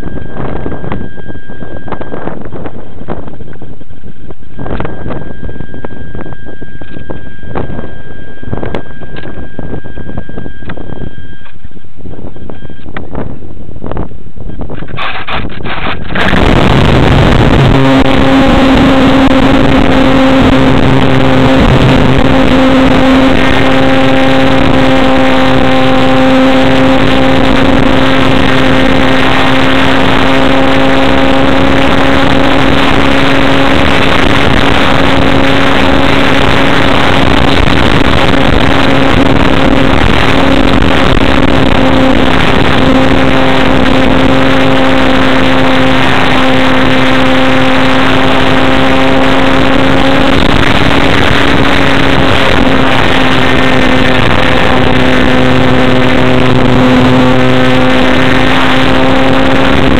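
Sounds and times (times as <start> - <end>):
model airplane motor drone: 0.0 - 59.9
wind noise: 0.0 - 59.9.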